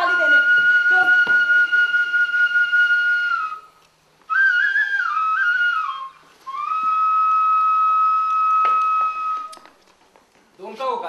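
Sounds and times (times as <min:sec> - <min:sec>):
flute playing slow melody: 0:00.0 - 0:09.7.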